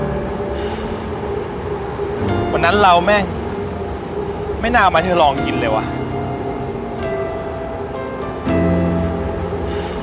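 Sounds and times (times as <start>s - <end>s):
city traffic: 0.0s - 10.0s.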